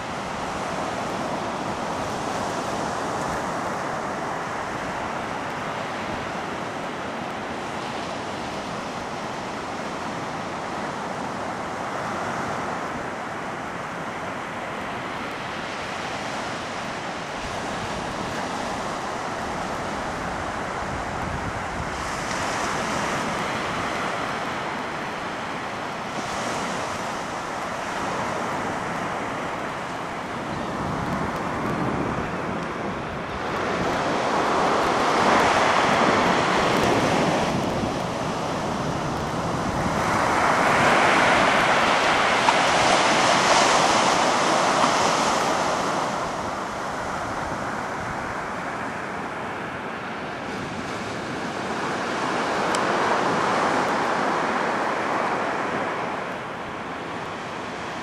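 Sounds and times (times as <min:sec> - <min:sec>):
ocean surf breaking on beach: 0:00.0 - 0:58.0.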